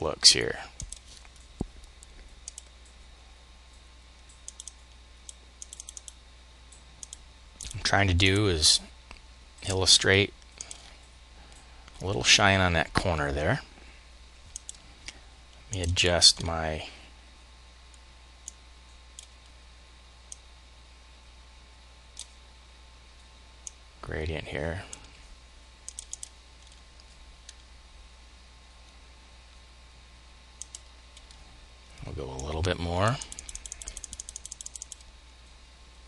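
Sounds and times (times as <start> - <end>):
low steady hum: 0.0 - 36.0
computer mouse clicks: 0.8 - 3.0, 4.2 - 6.2, 7.0 - 7.8, 14.5 - 16.5, 25.9 - 27.6, 30.6 - 31.4, 33.2 - 35.1.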